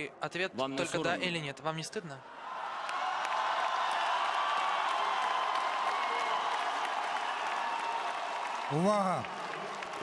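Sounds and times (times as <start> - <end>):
crowd clapping: 2.7 - 10.0.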